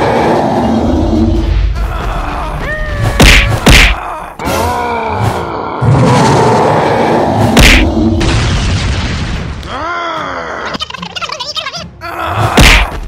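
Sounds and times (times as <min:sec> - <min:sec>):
groaning cartoon voice: 0:09.7 - 0:11.2.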